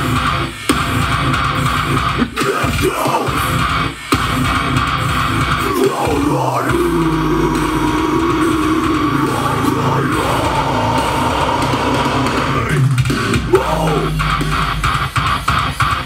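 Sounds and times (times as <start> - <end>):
metalcore guitars and drums: 0.0 - 16.0
harsh screamed vocal: 2.2 - 3.9, 5.4 - 15.5.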